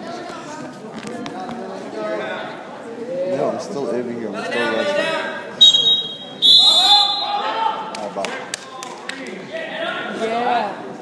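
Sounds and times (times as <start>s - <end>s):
referee whistle blasts: 5.6s - 7.5s.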